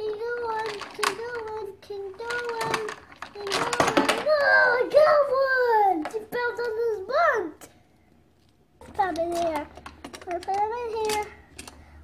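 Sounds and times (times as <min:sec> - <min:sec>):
plastic toy pieces clicking: 0:00.3 - 0:04.5, 0:08.9 - 0:11.8.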